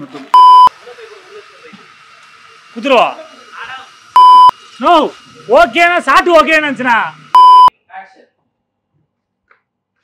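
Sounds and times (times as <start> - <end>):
censor bleep tone: 0.4 - 0.7, 4.2 - 4.5, 7.4 - 7.7.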